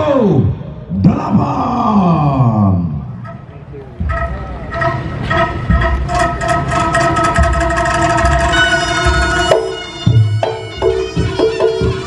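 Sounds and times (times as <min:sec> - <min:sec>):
heavy drum strokes: 0:03.9 - 0:12.0
drum and percussion strokes: 0:04.0 - 0:12.0
long reedy shawm note: 0:04.1 - 0:12.0.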